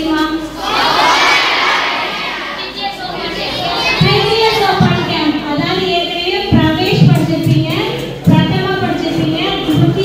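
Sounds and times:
children shouting together: 0:00.6 - 0:05.2
woman speaking: 0:04.0 - 0:10.0.

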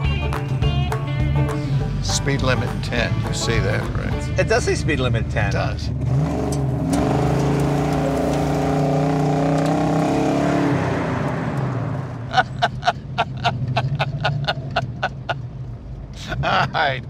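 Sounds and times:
car engine running: 0:00.0 - 0:17.0.

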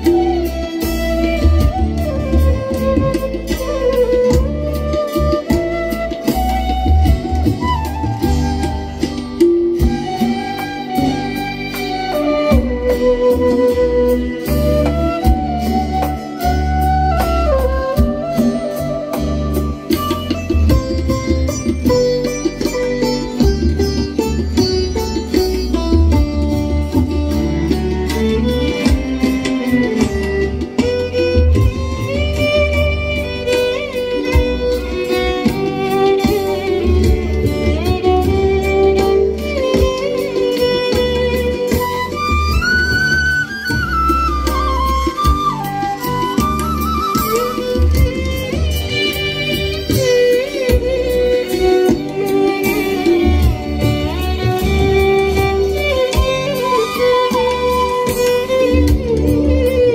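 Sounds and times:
bass backing: 0:00.0 - 0:59.9
hand drums: 0:00.0 - 0:59.9
keyboard: 0:00.0 - 0:59.9
light percussion strikes: 0:00.0 - 0:59.9
violin bowed melody: 0:00.0 - 0:59.9.

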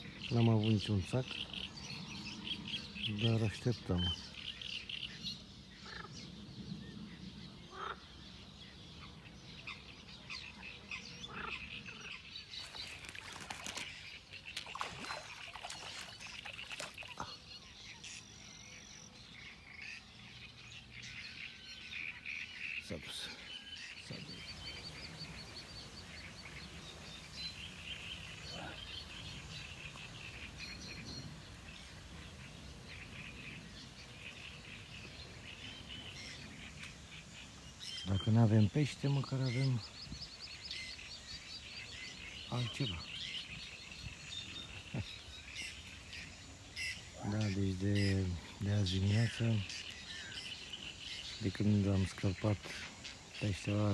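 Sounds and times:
small birds chirping: 0:00.0 - 0:53.9.

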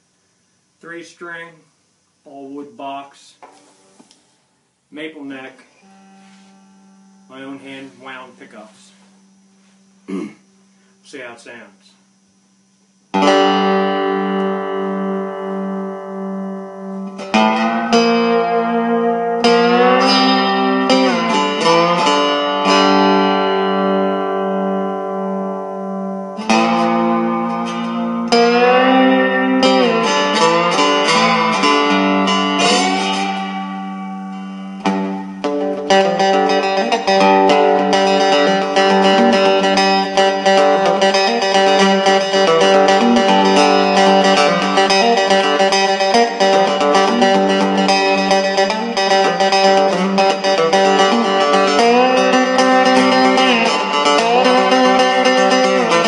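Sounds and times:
cigar box guitar playing: 0:04.9 - 0:10.8, 0:13.1 - 0:56.0
low droning string: 0:05.8 - 0:07.8.

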